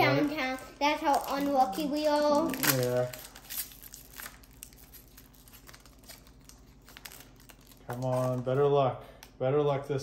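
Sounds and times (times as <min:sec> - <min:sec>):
card pack wrapper crinkling: 0:00.0 - 0:08.8.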